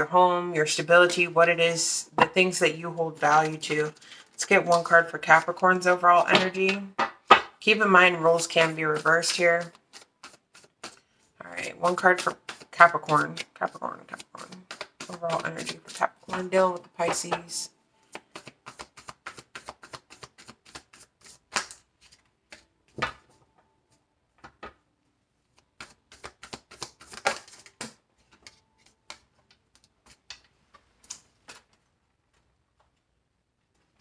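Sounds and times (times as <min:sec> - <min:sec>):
cards being shuffled: 0:02.4 - 0:06.9, 0:08.1 - 0:24.8, 0:25.4 - 0:32.4.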